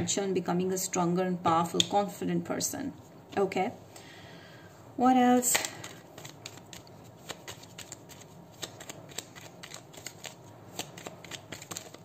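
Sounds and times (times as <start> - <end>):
cards being shuffled: 5.4 - 12.0.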